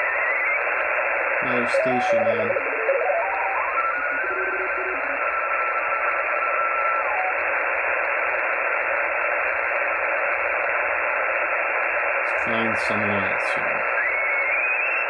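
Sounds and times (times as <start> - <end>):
faint steady radio tone: 0.0 - 15.0
radio band noise hiss: 0.0 - 15.0.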